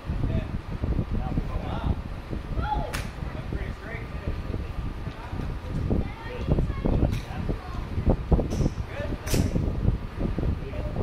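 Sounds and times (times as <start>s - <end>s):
golf club striking ball: 2.9s - 3.2s, 8.5s - 9.6s.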